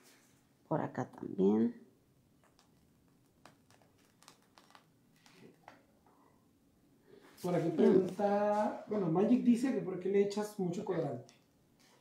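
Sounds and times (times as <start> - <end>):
piping bag crinkling: 2.4 - 5.9.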